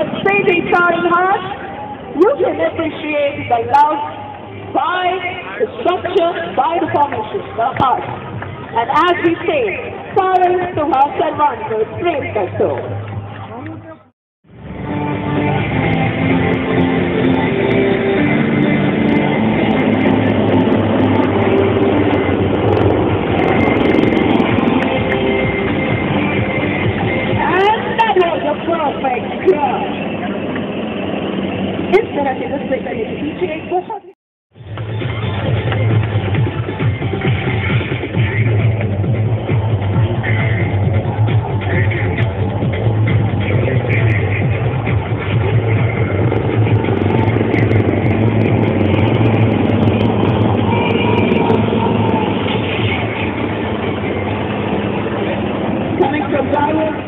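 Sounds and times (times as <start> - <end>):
helicopters flying overhead: 0.0 - 13.8, 14.5 - 34.1, 34.8 - 57.0
music playing: 0.0 - 31.8, 34.6 - 57.0.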